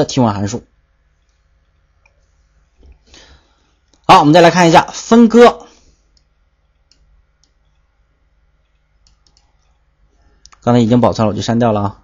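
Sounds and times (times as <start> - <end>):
faint computer clicks: 6.1 - 7.9, 8.6 - 9.8.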